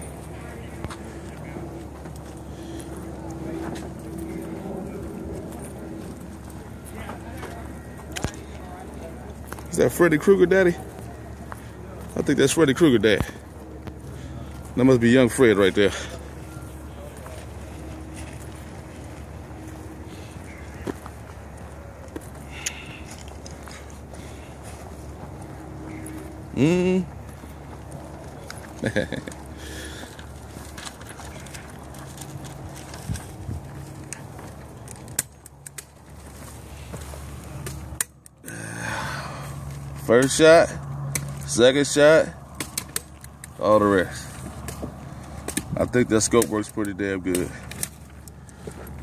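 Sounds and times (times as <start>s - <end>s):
footsteps on paved path: 0.0s - 49.0s.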